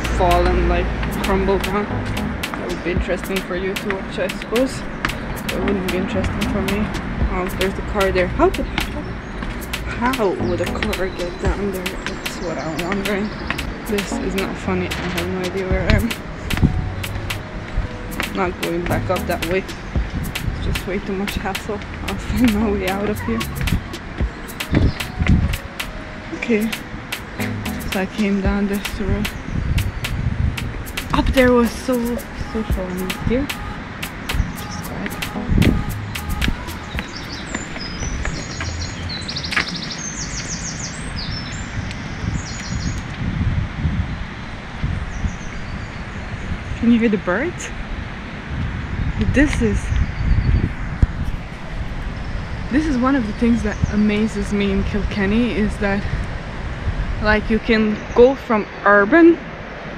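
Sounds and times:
low rumble: 0.0 - 3.7, 27.4 - 39.3
steady low rumble: 0.0 - 39.5
songbirds chirping and trilling: 0.0 - 43.3, 44.1 - 59.1
footsteps on stone stairs: 0.2 - 26.0, 29.8 - 40.6.

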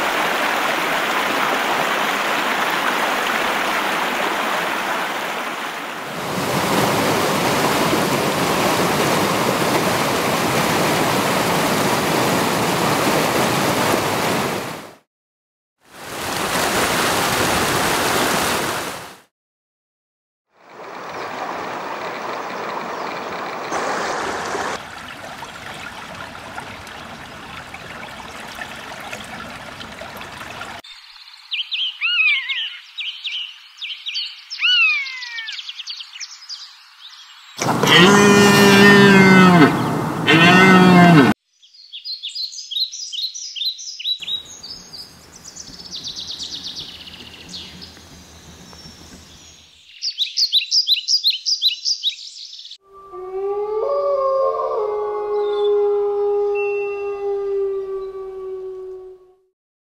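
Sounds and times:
river rushing softly: 0.0 - 15.0, 15.8 - 19.3, 20.6 - 30.9, 37.6 - 41.2, 44.3 - 49.6
stream rushing over cascades: 0.0 - 15.0, 15.9 - 19.3, 20.7 - 30.8
bird high falling calls: 30.9 - 59.0.

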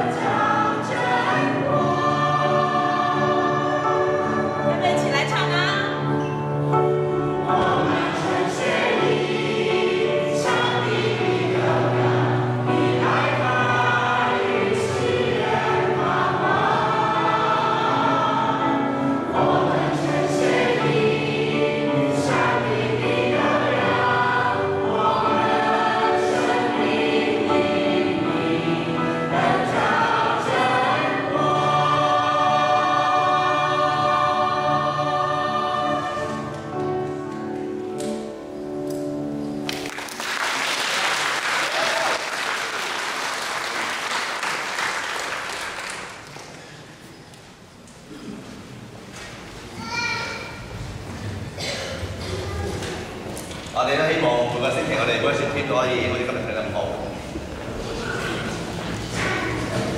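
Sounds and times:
choir singing a hymn: 0.0 - 39.6, 50.6 - 59.9
audience applause: 39.6 - 46.8.

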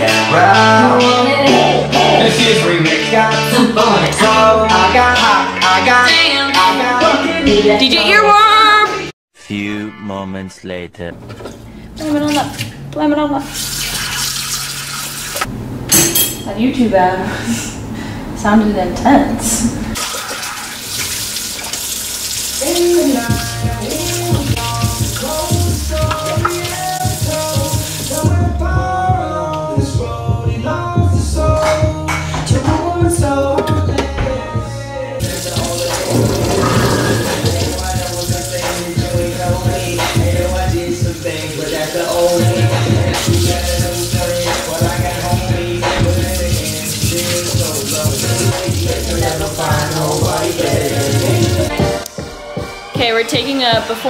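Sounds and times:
hip-hop music: 0.0 - 11.1, 22.6 - 54.0
faucet water running into sink: 13.4 - 15.5, 20.0 - 28.3, 35.2 - 51.7.

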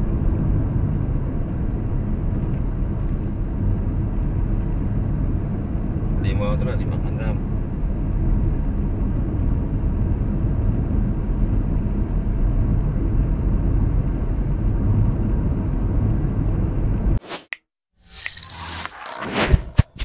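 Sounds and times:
vehicle road and engine rumble: 0.0 - 17.2.

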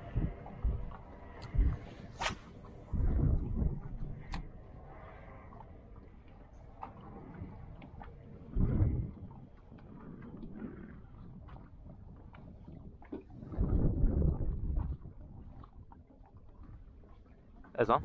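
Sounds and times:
low rumbling: 0.0 - 17.7
wind and water noise: 0.0 - 18.0.

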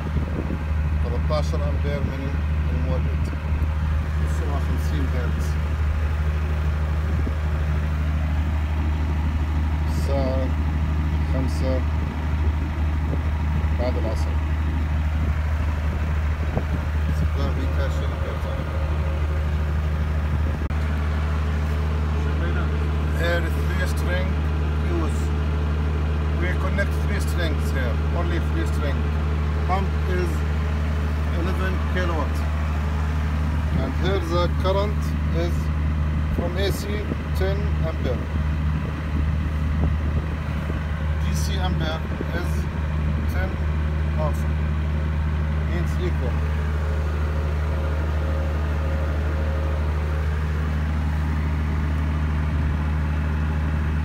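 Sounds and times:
diesel generator running: 0.0 - 54.0.

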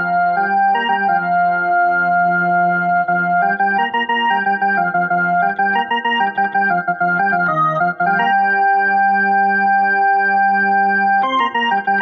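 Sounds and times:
electronic keyboard organ melody: 0.0 - 12.0.

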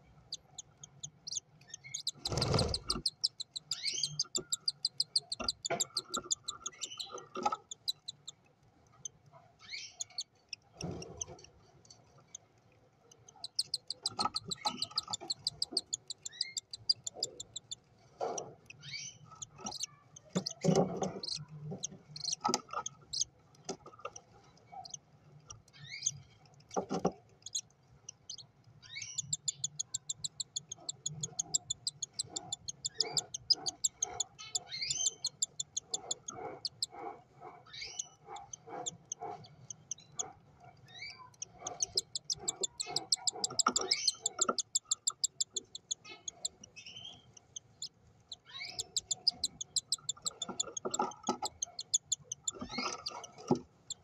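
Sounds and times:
bird chirps: 0.3 - 8.4, 13.2 - 17.8, 28.3 - 37.0, 37.7 - 40.3, 40.9 - 54.0
chick begging cheeps: 41.1 - 46.7.

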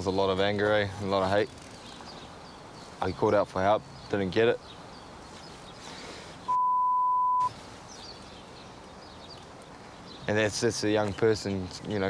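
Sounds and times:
faint outdoor background noise: 0.0 - 12.0
high censor beep: 6.5 - 7.5.

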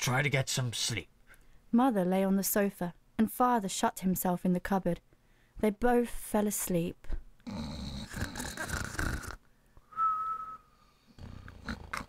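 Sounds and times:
cartoon snoring breath: 7.4 - 9.4, 10.9 - 12.0
whistle on the out-breath: 9.8 - 10.9.

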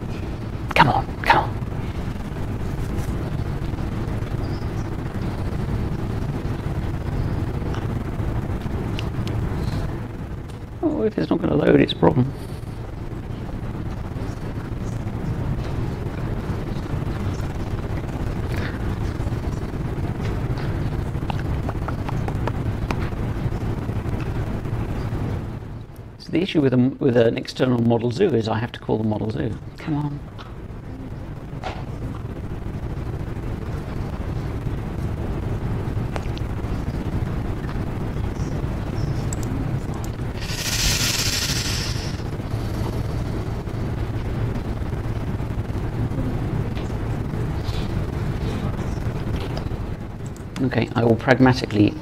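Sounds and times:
low room hum: 0.0 - 52.0.

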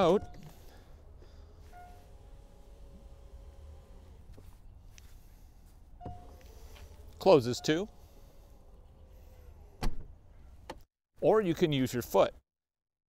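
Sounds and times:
electric hatch motor hum: 0.0 - 5.4, 6.0 - 9.8.

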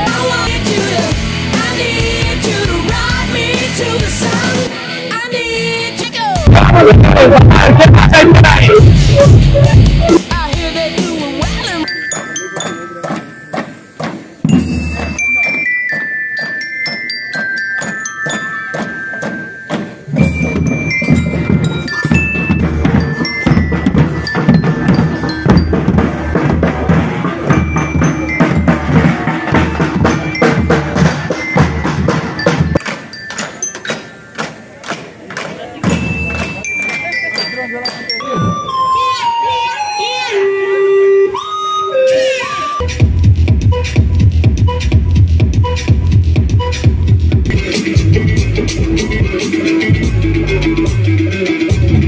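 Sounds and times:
snare and bass drums: 6.4 - 11.8, 17.8 - 36.6, 42.8 - 52.0
bell lyre melody: 11.6 - 34.8, 35.9 - 40.2.

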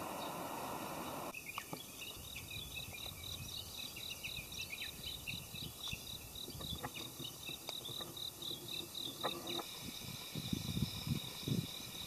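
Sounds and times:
insect high-pitched pulsed chirp: 0.0 - 12.0.

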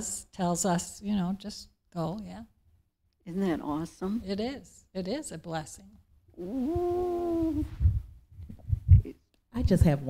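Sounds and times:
woman humming a steady note: 6.4 - 8.0
low thumps: 6.4 - 10.0.

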